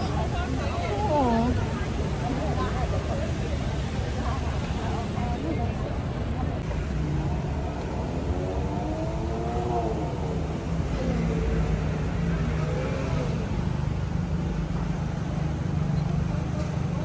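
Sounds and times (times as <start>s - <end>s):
faint voices: 0.0s - 17.0s
traffic rumble: 0.0s - 17.0s.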